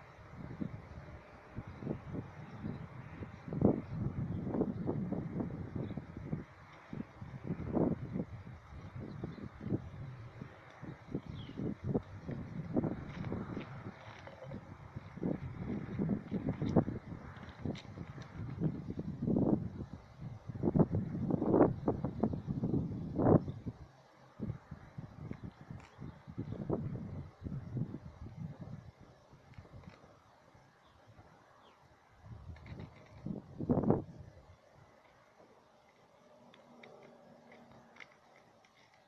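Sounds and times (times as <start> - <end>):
wind buffeting microphone: 0.0 - 31.4, 32.1 - 35.0.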